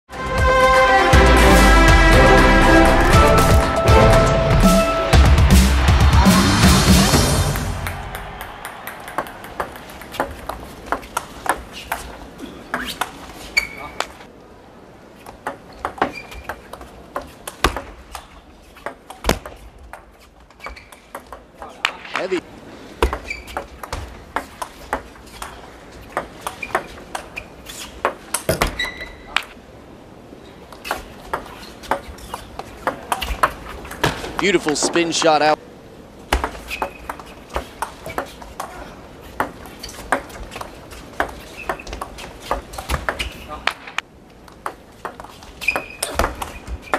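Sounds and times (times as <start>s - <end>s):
table tennis ball clicking: 8.6s - 11.7s
shoes squeaking on floor: 10.1s - 14.3s, 15.1s - 22.4s, 23.0s - 29.6s, 30.4s - 35.4s, 36.3s - 43.6s, 44.6s - 46.9s.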